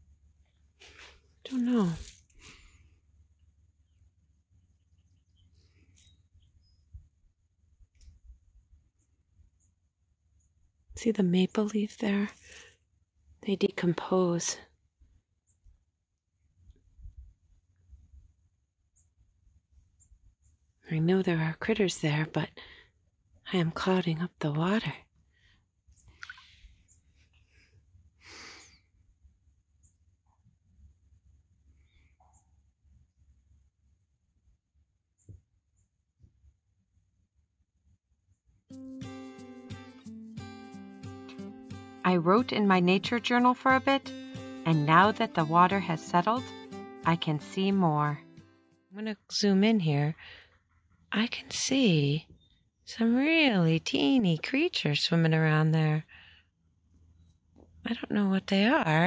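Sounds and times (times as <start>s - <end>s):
soft breath: 2.3s - 3.2s, 26.3s - 29.0s, 56.1s - 56.6s.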